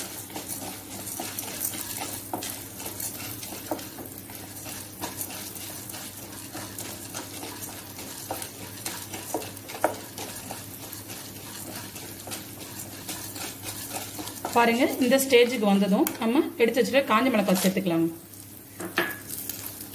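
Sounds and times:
lentils clicking against pan: 0:00.0 - 0:16.3
wooden spatula scraping pan: 0:00.0 - 0:16.3, 0:16.9 - 0:17.9
lentils sizzling in oil: 0:00.0 - 0:19.9.

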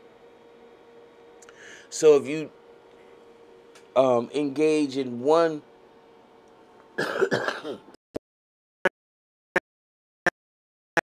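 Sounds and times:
woman clearing her throat: 0:07.0 - 0:07.8.

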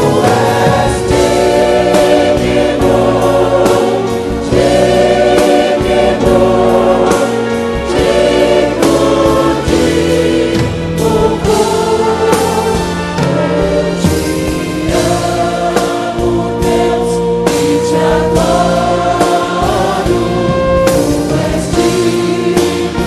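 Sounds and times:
choir singing gospel song: 0:00.0 - 0:23.0
instrumental backing with percussion: 0:00.0 - 0:23.0.

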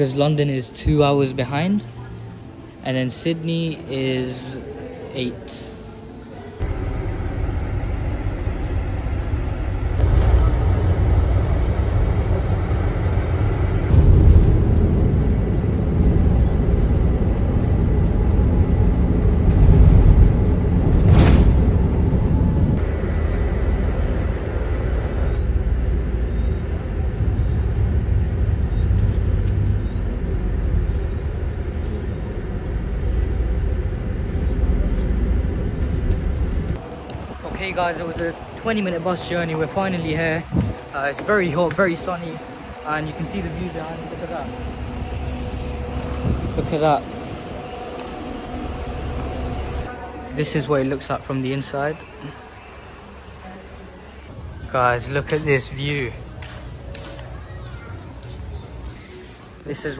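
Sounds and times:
bus engine and road rumble: 0:00.0 - 0:59.9.

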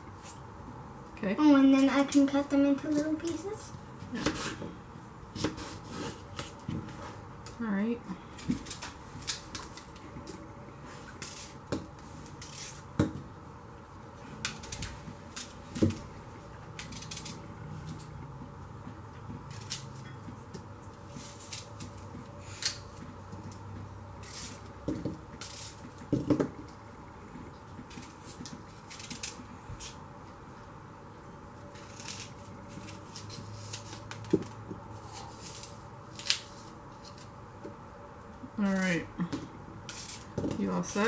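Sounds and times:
knife cutting apple: 0:04.1 - 0:07.2, 0:08.2 - 0:13.3, 0:14.3 - 0:18.4, 0:19.2 - 0:26.7, 0:31.6 - 0:37.7, 0:39.9 - 0:41.0.

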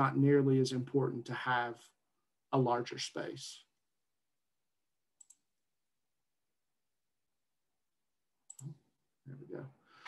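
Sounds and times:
computer mouse clicks: 0:05.2 - 0:05.5, 0:08.5 - 0:08.8.

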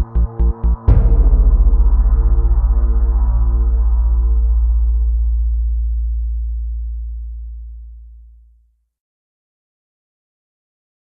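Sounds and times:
deep wavering bass drone: 0:00.0 - 0:08.6.

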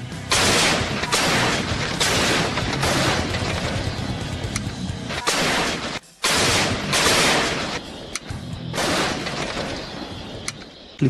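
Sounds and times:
field howitzers firing: 0:00.1 - 0:11.0.

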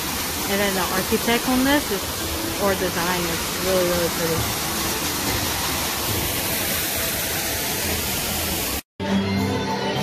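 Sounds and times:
waterfall splashing into pool: 0:00.0 - 0:08.8.

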